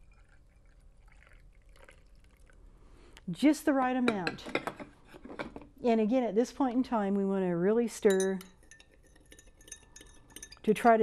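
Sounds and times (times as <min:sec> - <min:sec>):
coffee pouring into a glass: 0:00.0 - 0:02.7.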